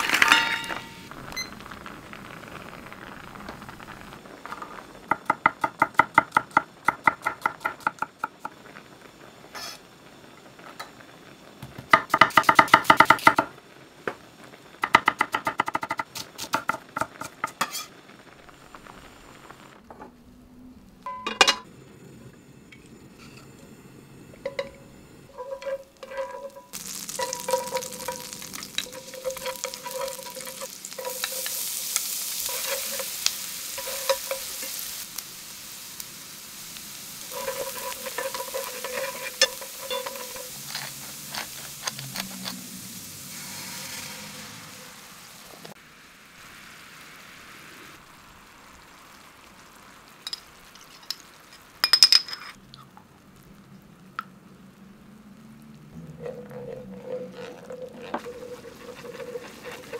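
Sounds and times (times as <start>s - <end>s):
garlic sizzling in frying pan: 0.0s - 20.0s, 21.0s - 59.9s.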